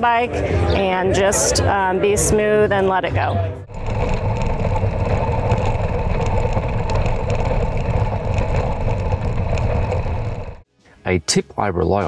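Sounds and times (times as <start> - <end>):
low rumble: 3.6 - 10.6
bike rattling: 3.7 - 10.6
bike tyres crunching on gravel: 3.7 - 10.6.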